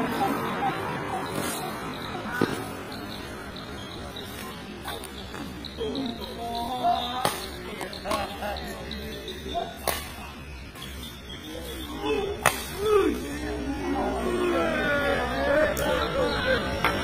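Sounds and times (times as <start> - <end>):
voices calling out: 0.0 - 17.0
racket hitting shuttlecock: 9.8 - 10.2, 12.4 - 12.9.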